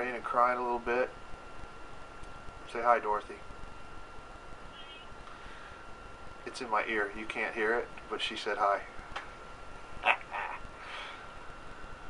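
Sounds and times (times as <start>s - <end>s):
quiet breath: 4.8s - 5.9s, 10.8s - 11.4s.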